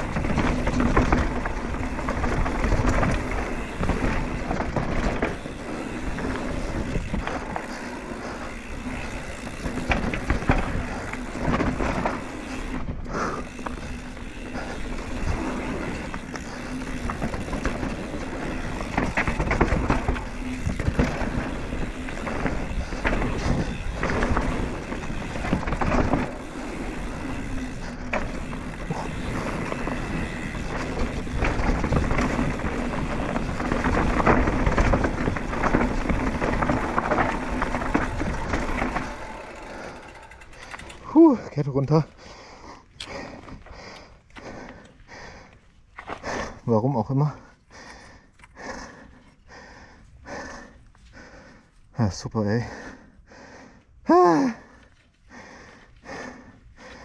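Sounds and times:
bike knocks and rattles: 0:00.0 - 0:41.2
bike tyres rolling over dirt: 0:00.0 - 0:57.0.

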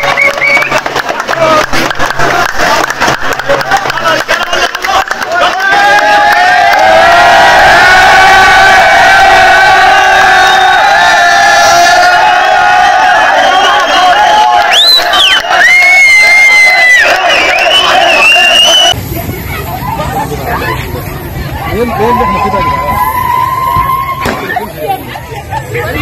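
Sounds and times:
crowd chanting: 0:00.0 - 0:15.7, 0:16.7 - 0:19.0
crowd shouting and cheering: 0:00.0 - 0:26.0.

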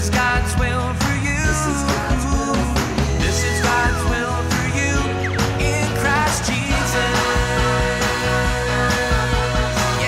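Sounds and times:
pop-rock band with vocals: 0:00.0 - 0:10.0.

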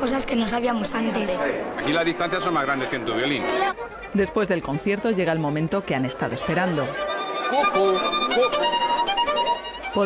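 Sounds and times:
violin bowed slowly: 0:06.4 - 0:10.0.

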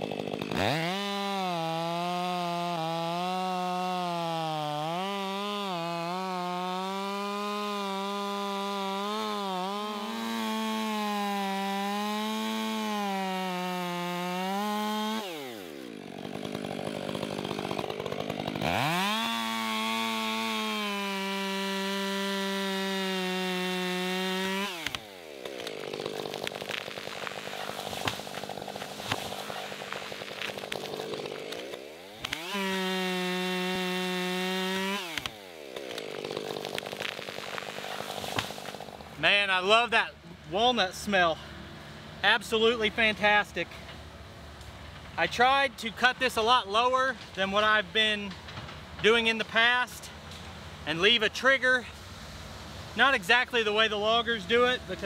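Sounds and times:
chainsaw cutting wood: 0:00.0 - 0:55.0.

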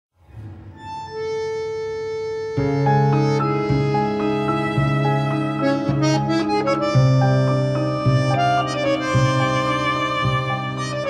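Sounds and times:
free-reed instrument long note: 0:00.2 - 0:11.0
tango music: 0:00.4 - 0:11.0.

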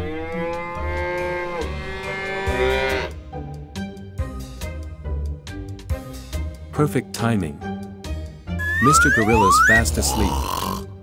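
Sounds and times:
background music: 0:00.2 - 0:11.0.

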